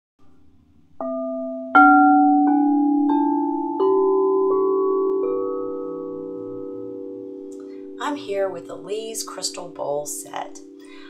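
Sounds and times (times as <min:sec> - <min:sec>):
crystal singing bowls ringing: 0:01.8 - 0:09.6.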